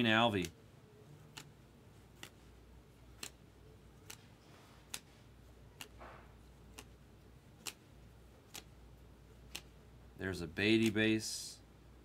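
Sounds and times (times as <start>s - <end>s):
trading cards snapping clicks: 1.2s - 2.4s, 3.1s - 8.8s, 9.4s - 9.8s, 10.7s - 11.0s.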